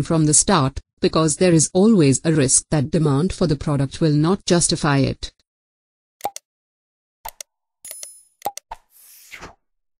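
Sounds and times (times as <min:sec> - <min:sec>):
double mouse click: 0:06.2 - 0:06.4, 0:07.3 - 0:08.7.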